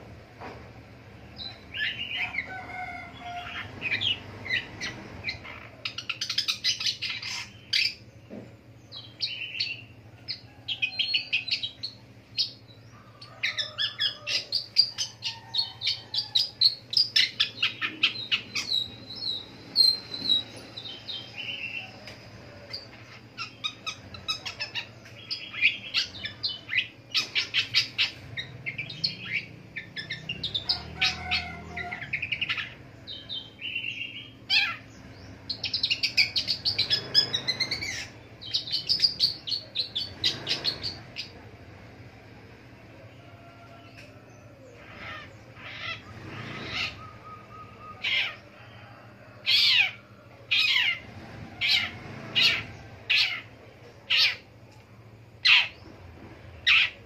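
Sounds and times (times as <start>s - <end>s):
bird singing chirps and trills: 1.3s - 54.8s, 55.4s - 57.0s.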